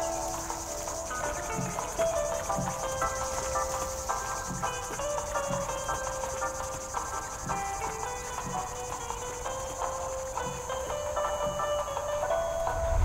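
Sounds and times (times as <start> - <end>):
crickets trilling: 0.0 - 13.0
soft melodic music: 0.0 - 13.0.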